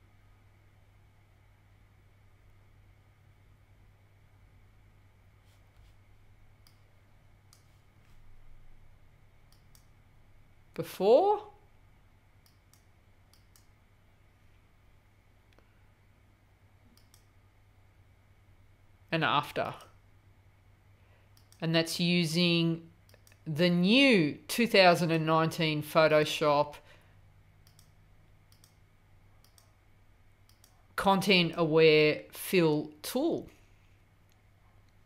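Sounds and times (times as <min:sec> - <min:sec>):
computer mouse clicks: 0:06.6 - 0:06.9, 0:09.5 - 0:10.0, 0:12.4 - 0:13.8, 0:16.9 - 0:17.4, 0:21.3 - 0:21.6, 0:23.0 - 0:23.4, 0:27.6 - 0:28.8, 0:29.4 - 0:29.8, 0:30.4 - 0:30.8.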